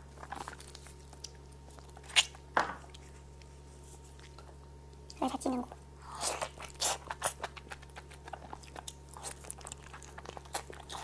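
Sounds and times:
close-miked chewing and smacking: 0.1s - 5.2s, 6.4s - 11.0s.

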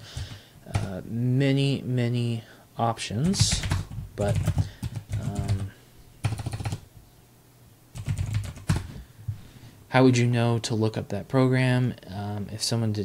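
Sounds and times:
keyboard typing: 0.0s - 0.9s, 3.2s - 6.8s, 8.0s - 8.9s.

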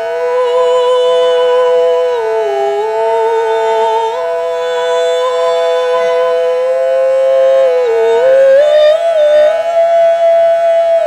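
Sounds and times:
singing bowl drone: 0.0s - 11.0s
woman singing a held vowel: 3.4s - 6.6s.

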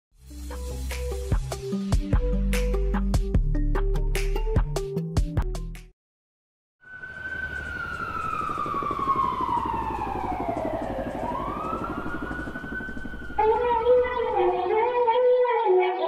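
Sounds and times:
siren-like gliding sound effect: 6.8s - 14.9s
low drone: 6.9s - 14.8s.

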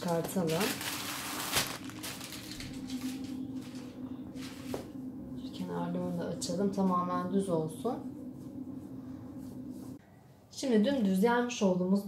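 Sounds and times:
plastic film crinkling: 0.0s - 3.8s
hands rustling dough sheets: 0.0s - 5.0s.

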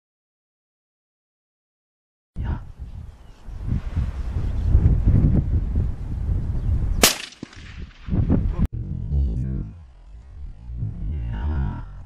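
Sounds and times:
wind buffeting microphone: 2.4s - 12.0s
rifle shot with echo: 7.0s - 8.2s.

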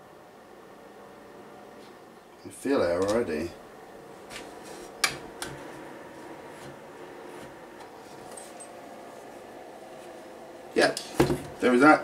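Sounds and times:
small duct fan running: 0.0s - 12.0s.

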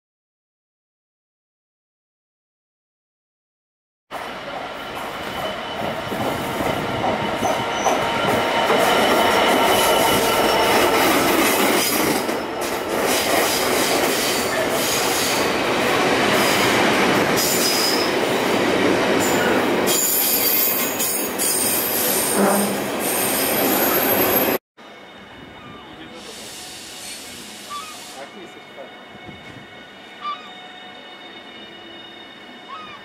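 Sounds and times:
freight train wheels rumbling: 4.1s - 32.8s
train wheels squealing: 5.0s - 6.6s, 7.2s - 10.9s, 17.4s - 18.2s, 19.2s - 33.0s.

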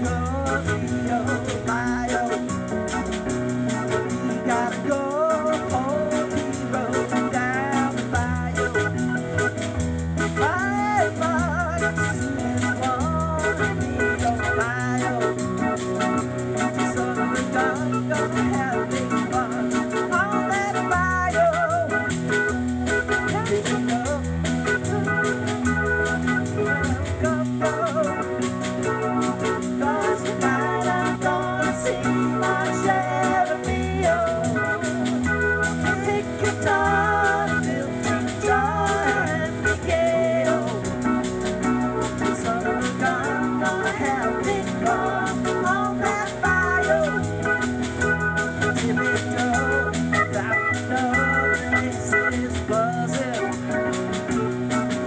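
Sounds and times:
drums: 0.0s - 55.0s
keyboard bass line: 0.0s - 55.0s
organ keyboard melody: 0.0s - 55.0s.

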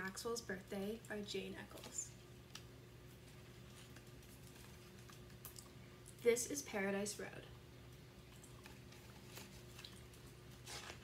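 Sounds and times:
low room hum: 0.0s - 11.0s
book pages rustling and clicking: 8.6s - 11.0s.

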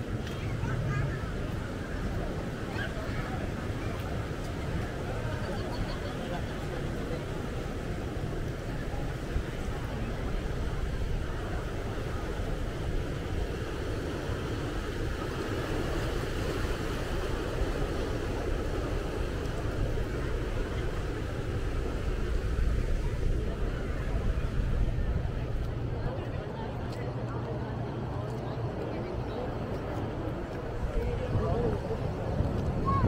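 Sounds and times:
wind buffeting microphone: 0.0s - 33.0s
ocean surf breaking on rocks: 0.1s - 26.0s.

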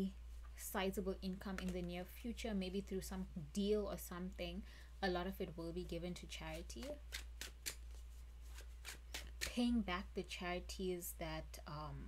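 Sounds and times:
cards flicking and rustling: 6.6s - 9.6s.

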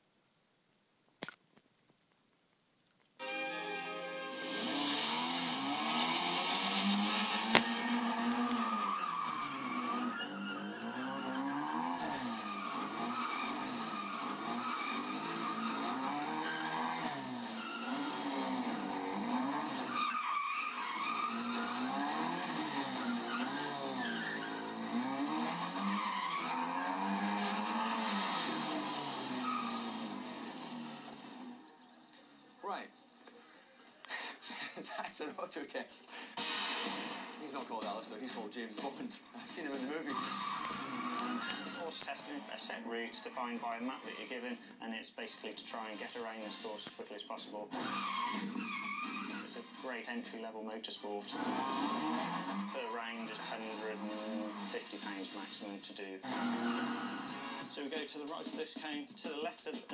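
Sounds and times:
tyre squeal: 3.2s - 31.9s, 39.9s - 44.4s, 47.8s - 49.9s, 51.3s - 55.2s, 56.2s - 57.7s
car engine revving: 3.2s - 32.8s, 36.3s - 44.8s, 45.5s - 58.5s.

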